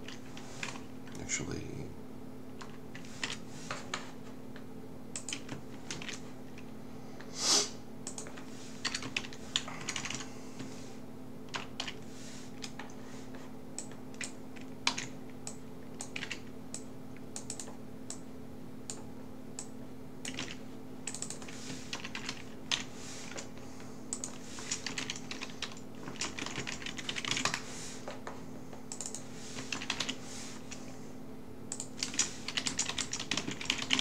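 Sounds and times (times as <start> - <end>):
steady low hum: 0.0 - 34.0
typing on keyboard: 5.2 - 6.2, 8.1 - 10.2, 11.5 - 12.0, 13.8 - 16.5, 19.6 - 23.5, 24.1 - 27.6, 28.9 - 30.8, 31.7 - 34.0.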